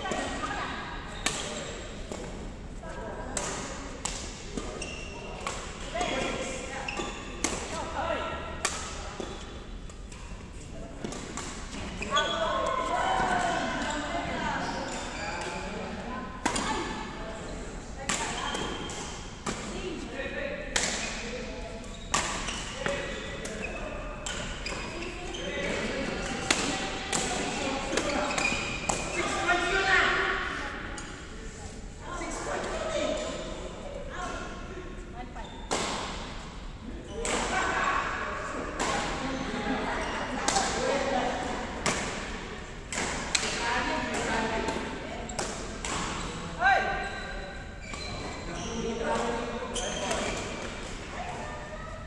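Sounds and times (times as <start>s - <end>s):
people talking: 22.8s - 35.6s, 37.1s - 42.2s.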